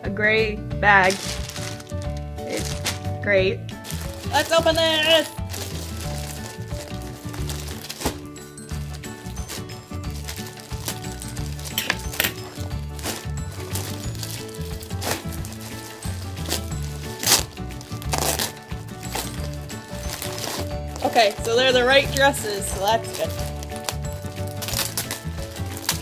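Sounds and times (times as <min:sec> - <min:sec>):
background music with bass: 0:00.0 - 0:26.0
plastic mailer bag crinkling: 0:00.9 - 0:03.1, 0:03.8 - 0:26.0.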